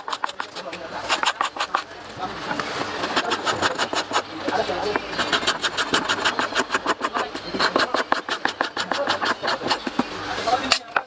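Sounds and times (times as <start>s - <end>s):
sandpaper rubbing on wood: 0.0s - 1.9s, 2.9s - 10.0s.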